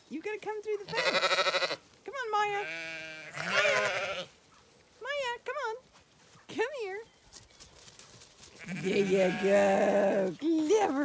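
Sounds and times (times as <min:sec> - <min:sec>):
sheep bleating: 0:00.9 - 0:01.8, 0:02.4 - 0:04.4, 0:08.6 - 0:10.2.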